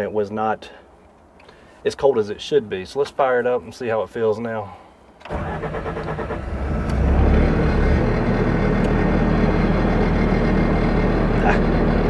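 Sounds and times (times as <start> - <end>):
diesel engine starting and idling: 5.2 - 12.0.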